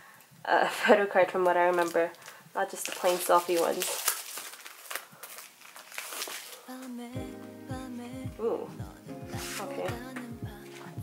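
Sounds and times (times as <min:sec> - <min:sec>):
paper packaging rustling: 0:01.4 - 0:07.2, 0:09.4 - 0:09.9
background music with bass: 0:07.2 - 0:11.0.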